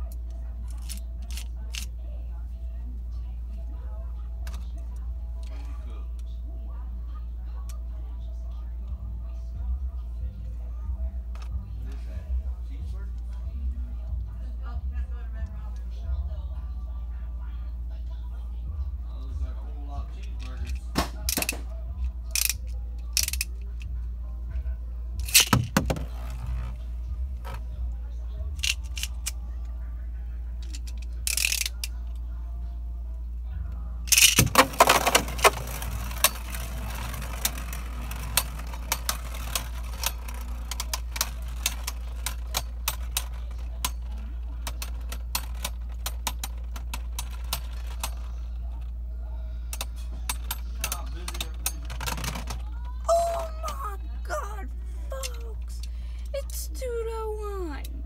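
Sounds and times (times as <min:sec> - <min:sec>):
spinning tops clicking and scraping: 0:22.3 - 0:23.8, 0:30.6 - 0:32.1, 0:34.1 - 0:48.9, 0:49.8 - 0:52.7
spinning tops clattering: 0:34.1 - 0:48.3.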